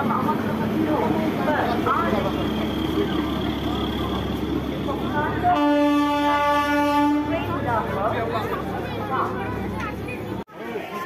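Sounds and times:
people talking: 0.0 - 5.7, 7.0 - 11.0
train horn blast: 5.5 - 7.5.

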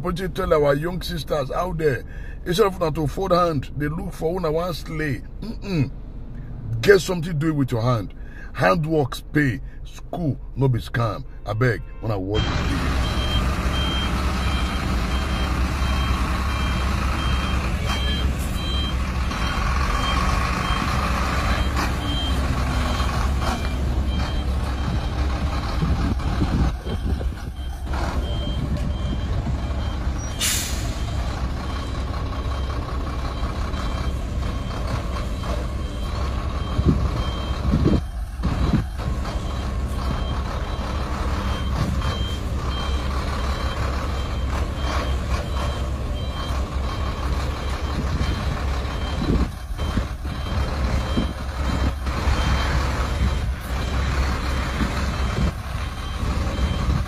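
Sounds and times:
reversing alarm beeping: 12.3 - 57.0
truck diesel engine running: 12.3 - 57.0
air brake hiss: 30.3 - 31.1.

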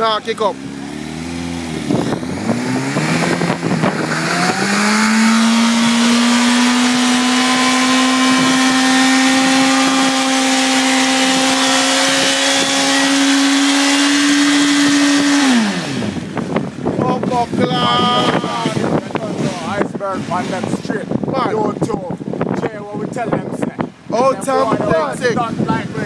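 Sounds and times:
motorcycle engine revving: 0.0 - 21.7
rear tyre spinning: 0.4 - 19.2.

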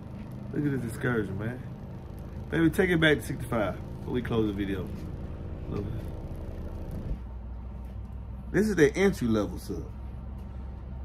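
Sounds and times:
subwoofer low bass tone: 0.0 - 9.0.

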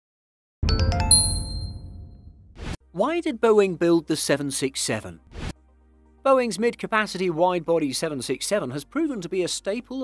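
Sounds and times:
bright struck chime notes: 0.6 - 2.2.

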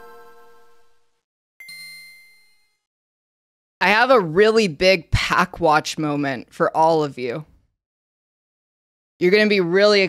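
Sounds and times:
bell-like ding: 1.6 - 2.9
chime: 1.6 - 2.9.

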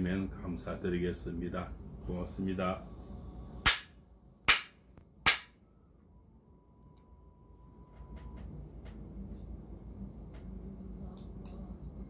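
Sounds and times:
bamboo clapper cracks: 3.7 - 3.9, 4.5 - 5.5.

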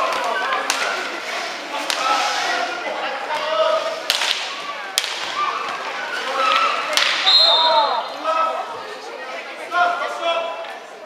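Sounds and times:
players and spectators shouting: 3.4 - 10.6
referee's whistle blast: 7.2 - 8.0.

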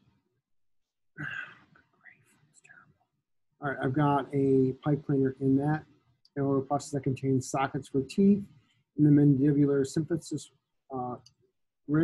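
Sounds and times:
man whispering: 3.6 - 5.8.

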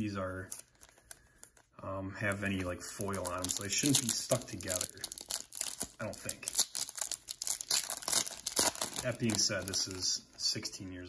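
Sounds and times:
plastic wrapper crinkling: 0.3 - 1.7, 2.3 - 10.5
sharp crackles of wrapper: 0.5 - 1.7, 2.3 - 10.1.

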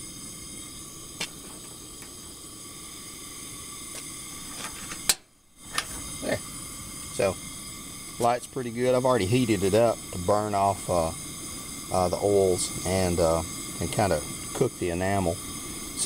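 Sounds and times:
gas stove burner hissing: 0.0 - 16.0.

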